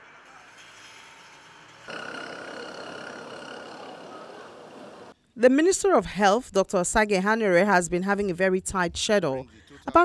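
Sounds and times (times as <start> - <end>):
traffic hum: 1.9 - 5.1.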